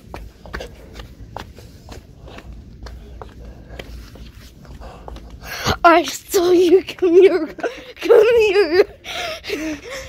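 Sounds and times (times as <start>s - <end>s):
light quick footsteps: 0.0s - 5.8s
low steady rumble: 0.0s - 10.0s.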